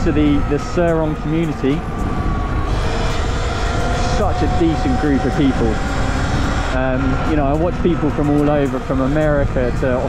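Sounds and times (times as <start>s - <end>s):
electric motor whine: 0.0s - 10.0s
wind rush: 0.0s - 10.0s.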